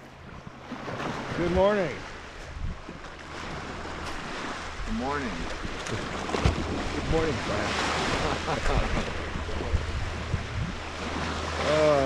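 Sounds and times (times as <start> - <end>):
wind rumble on microphone: 0.0 - 12.0
waves washing onto gravel: 11.0 - 12.0.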